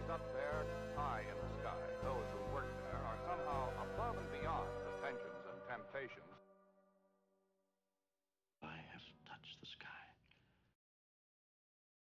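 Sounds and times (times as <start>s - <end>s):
person whispering: 8.6s - 10.4s.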